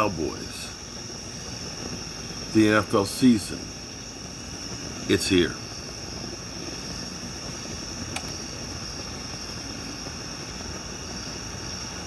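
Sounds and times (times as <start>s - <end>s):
gas fire hissing: 0.0s - 12.0s.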